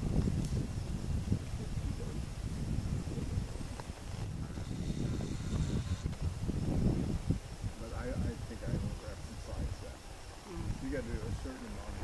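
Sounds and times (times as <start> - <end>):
wind on microphone: 0.0 - 12.0.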